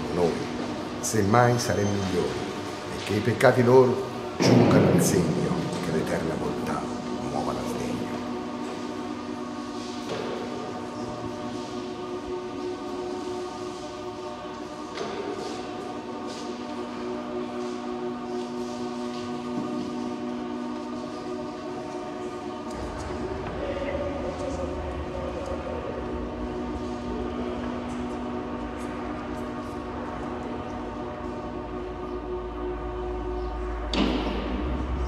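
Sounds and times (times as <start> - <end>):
droning chord of held tones: 16.8 - 35.0.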